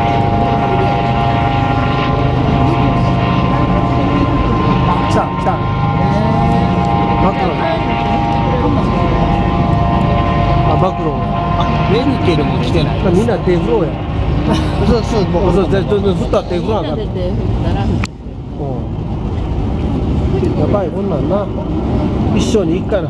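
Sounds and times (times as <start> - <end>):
engine drone: 0.0 - 23.0
high whining tones: 0.0 - 23.0
vehicles passing: 0.0 - 23.0.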